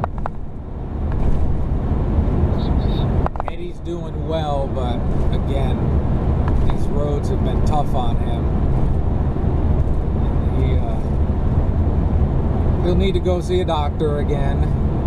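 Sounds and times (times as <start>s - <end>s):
road and engine noise: 0.0s - 15.0s.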